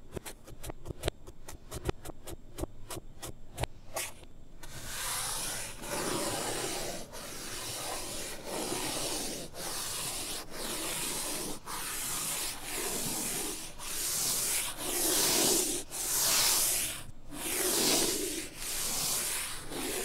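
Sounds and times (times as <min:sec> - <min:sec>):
reversed chalk scratching blackboard: 0:00.0 - 0:20.0.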